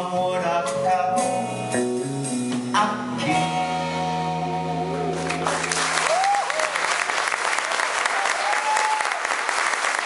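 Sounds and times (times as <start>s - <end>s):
live band playing: 0.0s - 6.3s.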